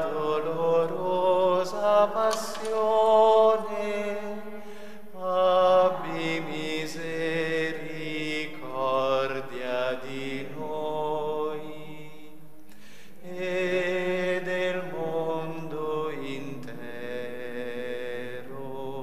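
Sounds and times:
slow devotional chant: 0.0 - 19.0.

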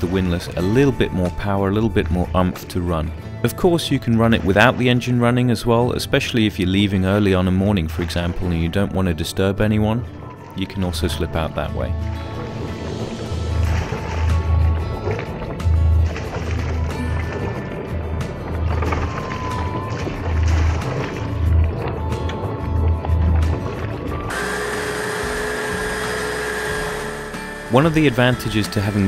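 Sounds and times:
electric winch motor whining: 24.2 - 29.0.

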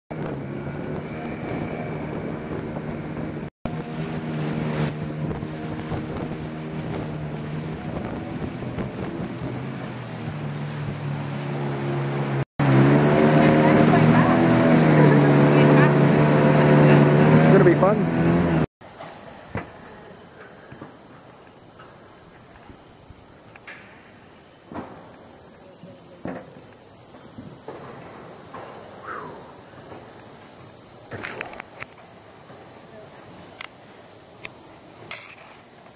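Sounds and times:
water rushing past hull: 0.1 - 17.9
outboard motor humming: 0.1 - 18.7.

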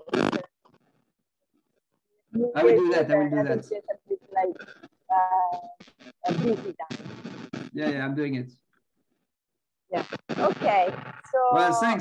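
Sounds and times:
man speaking: 2.4 - 3.8, 7.8 - 8.5, 11.6 - 12.0.

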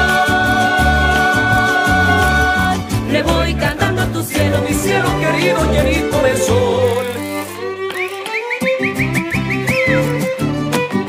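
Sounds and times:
strummed guitars: 0.0 - 11.0.

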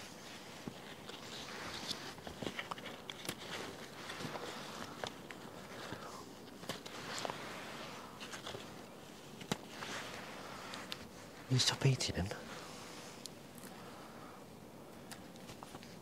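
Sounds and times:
small clicks and snaps: 14.9 - 16.0.

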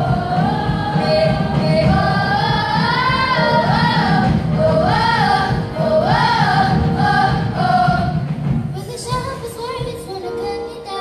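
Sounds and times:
children's choir singing: 0.0 - 8.5.

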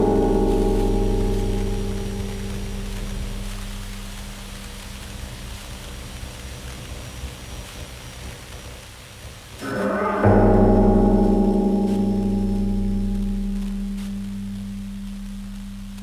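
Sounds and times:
hiss: 0.0 - 16.0.

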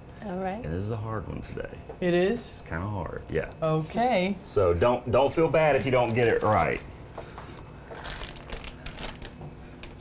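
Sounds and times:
plastic packaging crinkling: 7.4 - 10.0.

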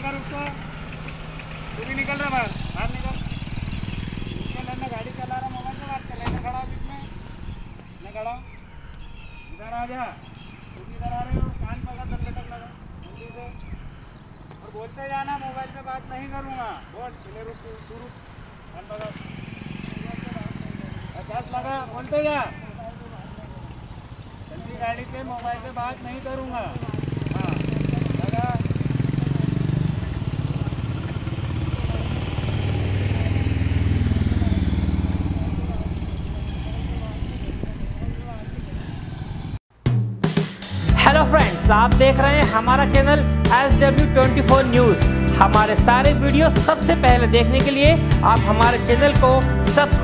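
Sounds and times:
vehicle engine rumbling: 0.0 - 39.6
outdoor street noise: 0.0 - 50.0
man speaking with raised voice: 4.4 - 7.2, 10.8 - 13.7, 14.6 - 19.2, 19.9 - 23.6, 40.9 - 50.0
low rumbling: 26.8 - 39.6.

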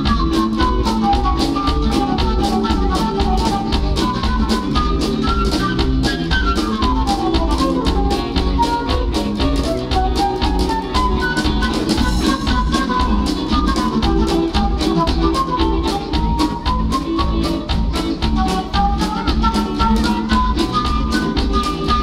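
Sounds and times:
flute melody: 0.0 - 22.0
live band playing: 0.0 - 22.0.

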